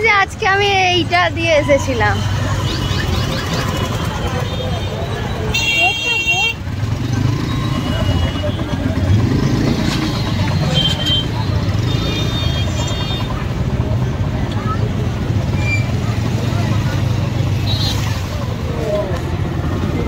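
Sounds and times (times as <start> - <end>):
idling motorcycle engines: 0.0 - 20.0
voices chattering: 0.0 - 20.0.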